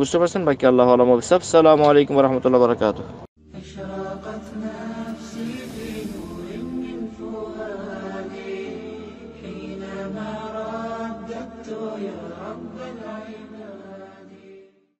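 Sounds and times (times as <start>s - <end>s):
low steady drone: 3.4s - 11.6s
voice chanting long notes: 3.4s - 13.7s.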